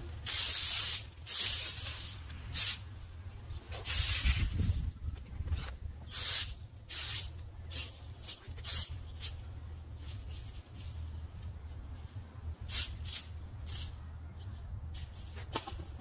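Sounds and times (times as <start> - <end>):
rake scraping on concrete: 7.7 - 11.2.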